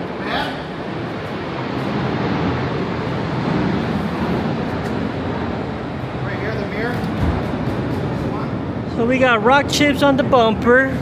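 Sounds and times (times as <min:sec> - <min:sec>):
parking garage roar: 0:00.0 - 0:11.0.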